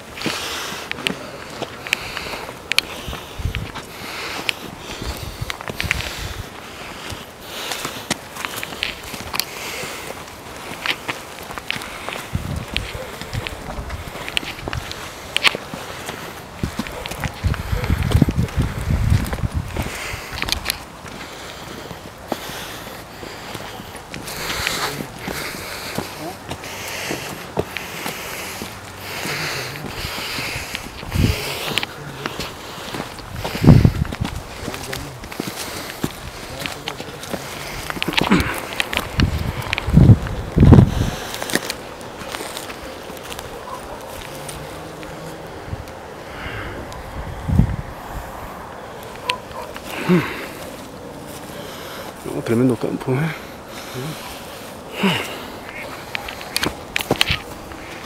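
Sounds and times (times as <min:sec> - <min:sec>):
footsteps scuffing on dirt trail: 0:00.0 - 0:46.2, 0:46.9 - 0:58.0
dry leaves crunching: 0:00.0 - 0:47.1, 0:47.8 - 0:58.0.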